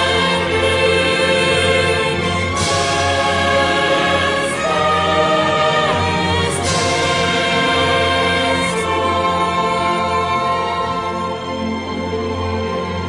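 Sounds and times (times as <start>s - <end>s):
choir singing held chords: 0.0s - 13.0s.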